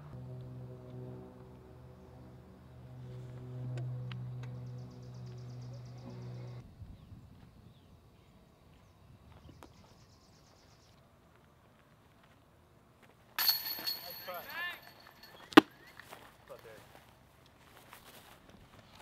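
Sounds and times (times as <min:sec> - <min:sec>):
small engine humming: 0:00.0 - 0:06.6.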